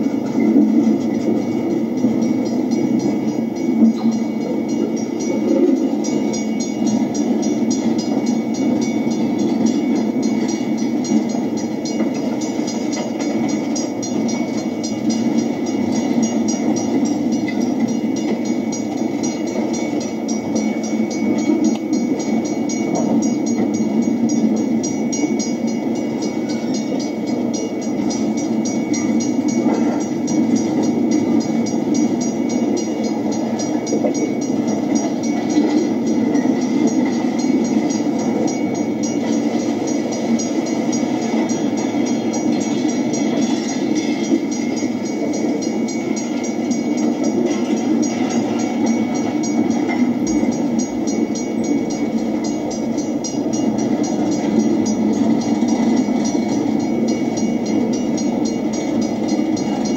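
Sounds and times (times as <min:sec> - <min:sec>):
train rolling rumble: 0:00.0 - 0:59.9.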